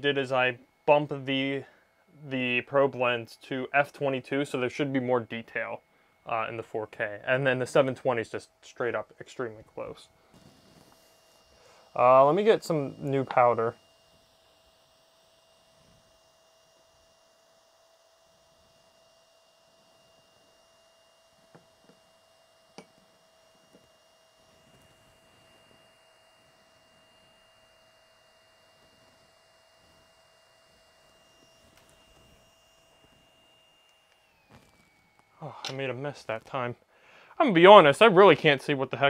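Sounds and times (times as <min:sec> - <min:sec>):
faint electronic whine: 0:00.0 - 0:39.0.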